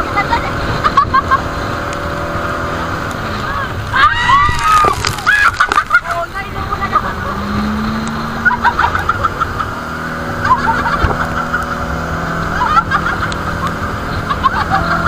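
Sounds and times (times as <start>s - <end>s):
boat engine droning: 0.0s - 15.0s
loud wind: 0.0s - 15.0s
rough water noise: 0.0s - 15.0s.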